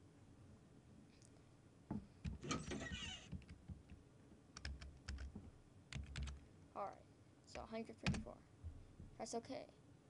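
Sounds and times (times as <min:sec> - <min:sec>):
keyboard typing clicks: 0:04.6 - 0:05.3, 0:05.9 - 0:06.4.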